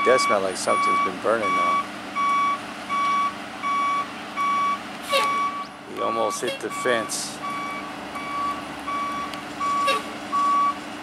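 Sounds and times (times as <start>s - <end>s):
truck backup alarm beeping: 0.0s - 11.0s.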